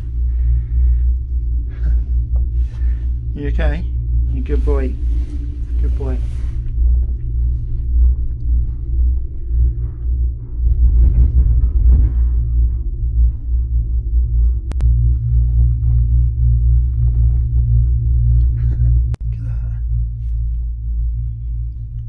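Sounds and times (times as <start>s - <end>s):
gondola cabin rumble: 0.0s - 22.0s.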